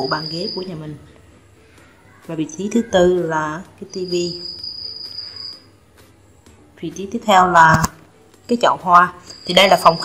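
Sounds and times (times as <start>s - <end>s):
thin high-pitched tone: 3.9s - 5.7s, 9.2s - 10.0s.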